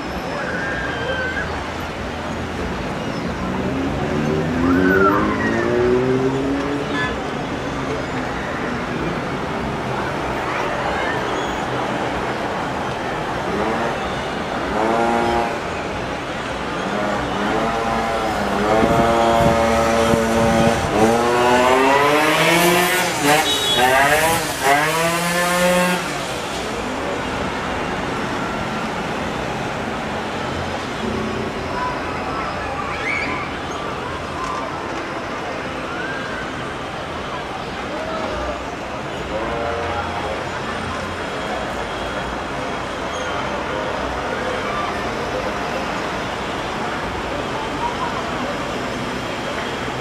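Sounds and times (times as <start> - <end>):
cars driving past: 0.0 - 50.0
people's voices: 0.0 - 50.0
road noise hum: 0.0 - 50.0
steady traffic noise: 0.0 - 50.0.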